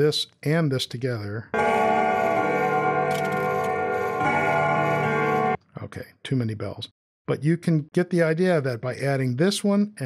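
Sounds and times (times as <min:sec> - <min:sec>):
carillon bells ringing: 0:01.6 - 0:05.6
clock chimes: 0:01.6 - 0:05.6.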